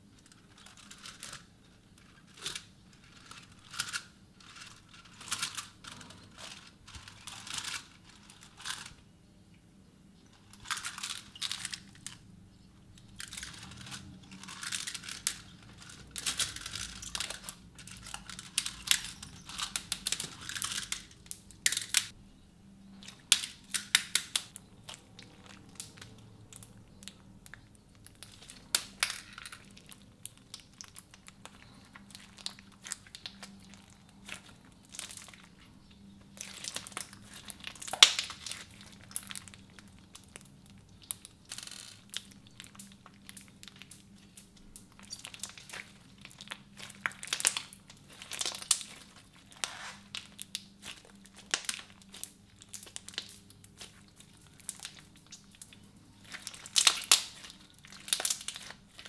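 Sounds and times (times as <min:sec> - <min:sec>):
slime with beads crackling: 0:00.0 - 0:09.0, 0:10.3 - 0:22.2, 0:22.8 - 0:59.0.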